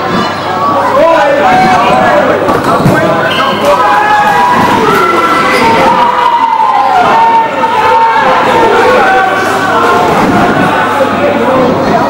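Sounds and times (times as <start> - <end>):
players shouting in a hall: 0.0 - 12.0.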